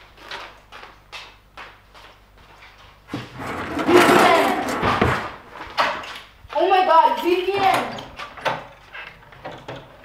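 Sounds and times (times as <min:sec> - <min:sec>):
metal utensils rattling: 0:03.4 - 0:05.0.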